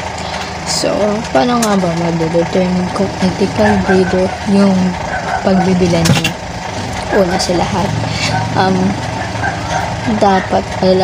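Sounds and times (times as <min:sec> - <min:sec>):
low engine-like rumble: 0:00.0 - 0:11.0
woman saying um: 0:00.6 - 0:06.3.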